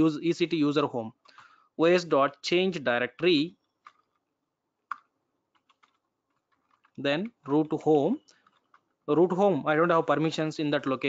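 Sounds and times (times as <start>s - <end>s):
computer keyboard typing: 4.9s - 7.0s.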